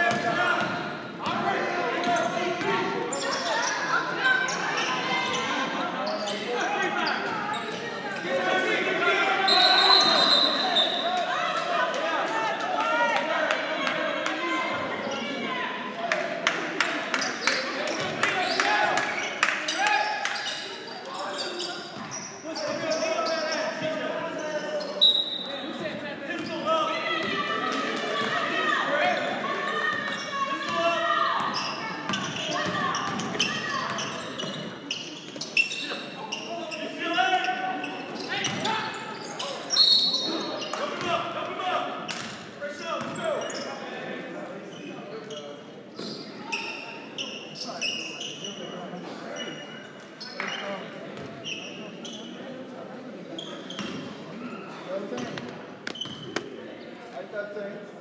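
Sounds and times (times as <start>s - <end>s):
shoe squeaks: 3.1s - 7.8s, 9.4s - 11.0s, 18.4s - 25.6s, 31.4s - 40.8s, 44.7s - 48.7s, 51.4s - 52.4s, 53.3s - 54.8s, 55.8s - 56.4s.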